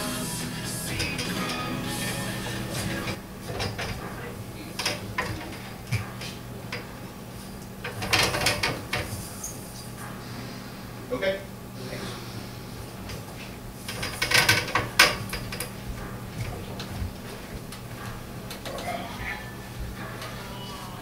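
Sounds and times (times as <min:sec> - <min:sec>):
music: 0:00.0 - 0:03.2
steady low hum: 0:00.0 - 0:21.0.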